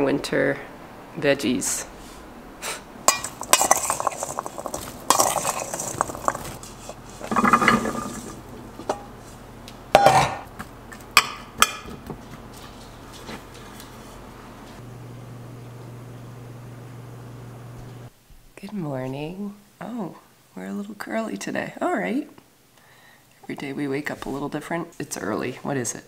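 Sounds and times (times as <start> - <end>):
dish and utensils clinking: 3.1 - 9.1, 10.0 - 10.5.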